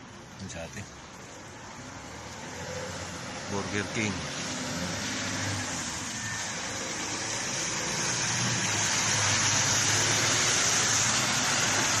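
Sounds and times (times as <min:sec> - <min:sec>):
tyres hissing on wet road: 0:00.0 - 0:12.0.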